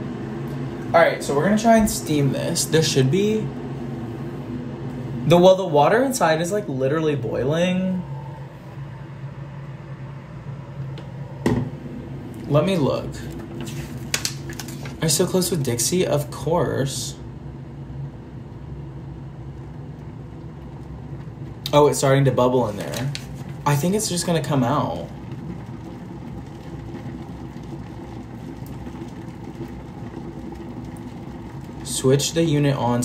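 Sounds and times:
low hum: 0.0 - 33.0
paper rustling: 13.6 - 15.0, 22.7 - 23.4
water bubbling: 23.3 - 33.0.

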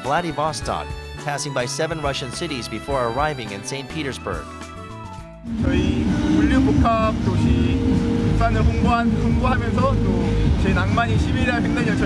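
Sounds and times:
man speaking: 0.0 - 4.5, 5.6 - 12.0
loud low rumble: 5.5 - 12.0.

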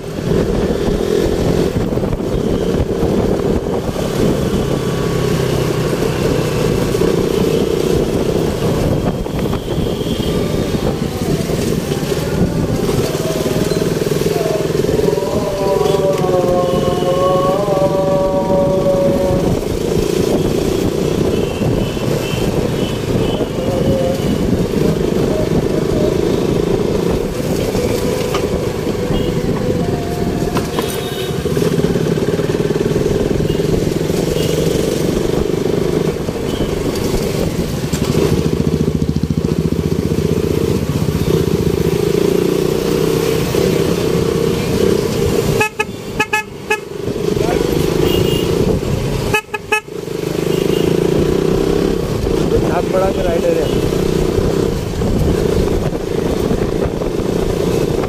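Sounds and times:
motorcycle engine: 0.0 - 58.0
road noise: 0.0 - 58.0
car and scooter horn honks: 45.5 - 46.9, 48.0 - 48.6, 49.2 - 49.9.

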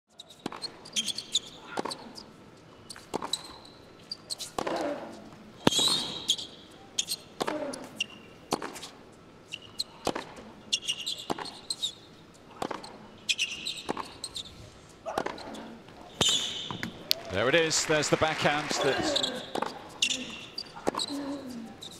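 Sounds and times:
shoes squeaking on court: 0.1 - 17.1, 18.8 - 21.9
tennis ball bouncing: 7.4 - 8.8, 10.0 - 11.9, 12.5 - 14.3, 19.3 - 21.5
players grunting: 17.4 - 21.8.

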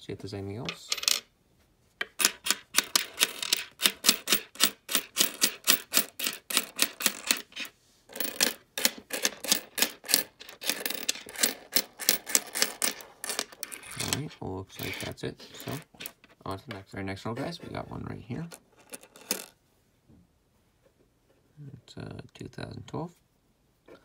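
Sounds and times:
coins clicking on a tabletop: 0.8 - 1.3, 2.0 - 14.2, 14.8 - 16.4, 18.8 - 19.5.

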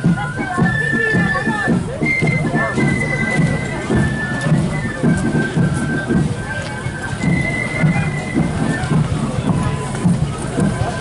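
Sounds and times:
steady drum beat: 0.0 - 11.0.

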